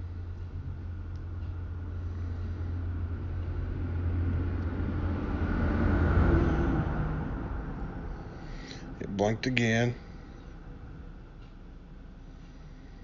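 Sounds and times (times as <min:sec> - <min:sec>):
low rumble: 0:00.0 - 0:09.2.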